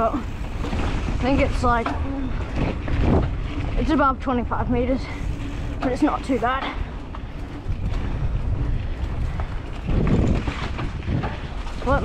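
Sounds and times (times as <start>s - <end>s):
bike clicks and rattles: 0.0s - 12.0s
bike tyres rumbling on dirt: 0.0s - 12.0s
wind buffeting microphone: 0.0s - 12.0s.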